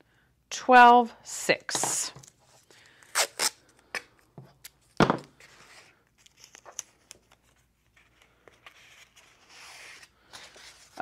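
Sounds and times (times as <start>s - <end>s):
masking tape peeling off roll: 3.1s - 3.6s.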